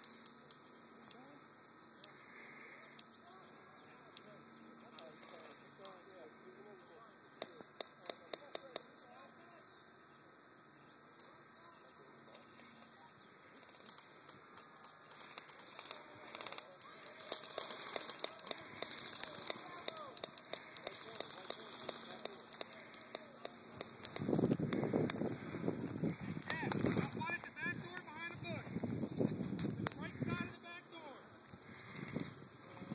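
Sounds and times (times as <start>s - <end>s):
voices: 0.3s - 32.9s
toy guns clicking and snapping: 13.6s - 27.0s.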